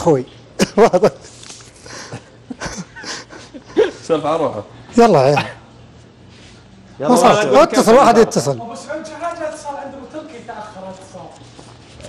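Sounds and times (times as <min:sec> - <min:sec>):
men laughing: 0:00.6 - 0:04.2
men murmuring: 0:00.6 - 0:05.8, 0:06.5 - 0:08.6.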